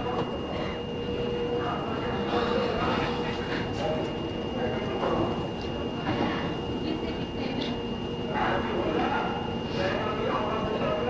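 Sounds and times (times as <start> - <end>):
faint voices: 0.0 - 11.0
high-pitched whine: 0.0 - 11.0
noisy background: 0.0 - 11.0.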